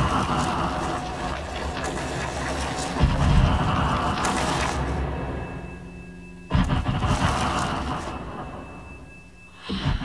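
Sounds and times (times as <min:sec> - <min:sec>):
low electronic drone: 0:00.0 - 0:10.0
surge of dense noise: 0:00.0 - 0:10.0.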